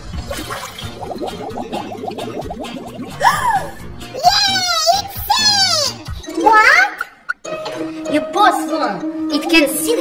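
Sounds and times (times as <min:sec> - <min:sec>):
water being disturbed: 0:00.0 - 0:03.3
bubbling gurgles underwater: 0:00.0 - 0:03.7.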